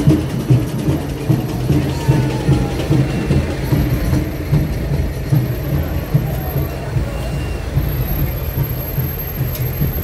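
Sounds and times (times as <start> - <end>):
tractor diesel engine rumbling: 0.0 - 10.0.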